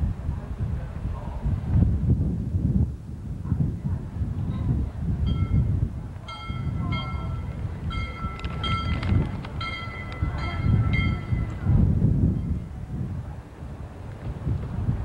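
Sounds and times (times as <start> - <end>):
low rumble: 0.0 - 15.0.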